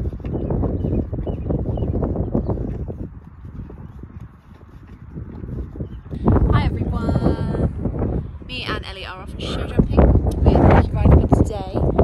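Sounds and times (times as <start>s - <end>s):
horse crunching feed: 2.2s - 6.0s.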